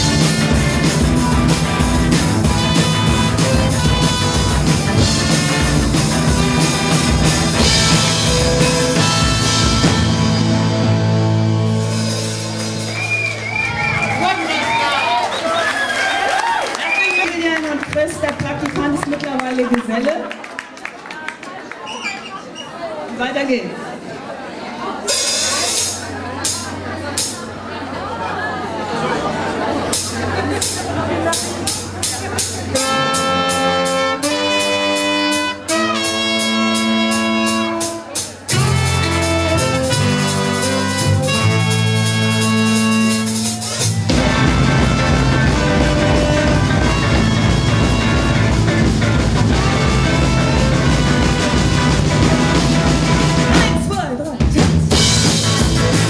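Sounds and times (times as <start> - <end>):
held brass chord: 0.0 - 12.8, 32.6 - 53.8
band playing with drums: 0.0 - 15.4, 17.0 - 20.2, 25.0 - 27.7, 29.5 - 56.0.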